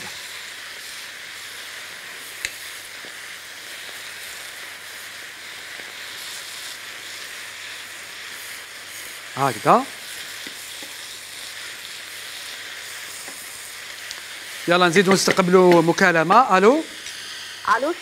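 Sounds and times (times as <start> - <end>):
greens sizzling in a pan: 0.0 - 18.0.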